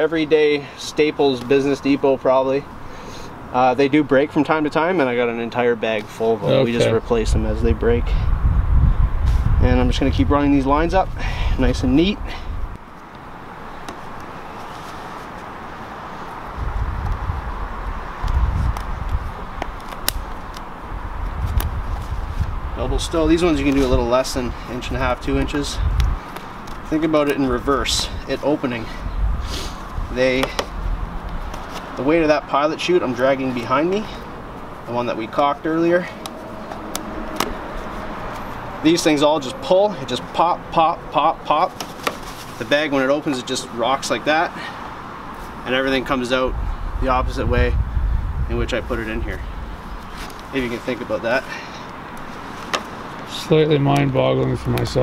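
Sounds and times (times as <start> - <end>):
outdoor background hiss: 0.0 - 55.0
steady background noise: 0.0 - 55.0
elastic bands snapping: 18.2 - 20.7, 36.2 - 37.6
faint clicks of lines pulled: 18.2 - 20.7, 36.2 - 37.6
low rumbling: 27.9 - 31.5.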